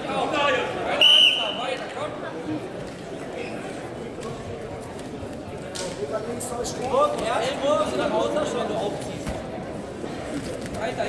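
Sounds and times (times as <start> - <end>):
voices chattering: 0.0 - 11.0
referee's whistle: 1.0 - 1.7.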